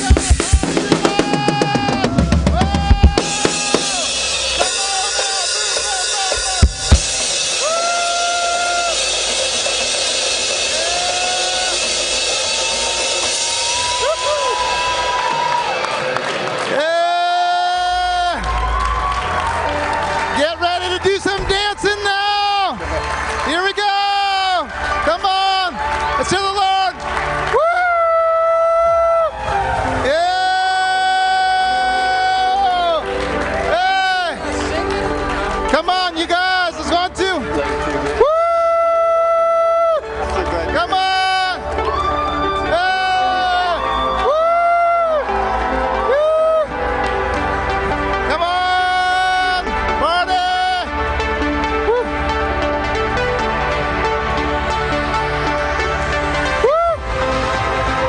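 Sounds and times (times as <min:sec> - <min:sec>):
loud drum hits: 0:00.0 - 0:08.0
held shouted notes: 0:00.0 - 0:15.6
drum kit playing: 0:00.0 - 0:15.7
crowd cheering and whooping: 0:00.0 - 0:35.6, 0:38.0 - 0:50.9, 0:53.8 - 0:58.0
live worship music: 0:00.0 - 0:58.0.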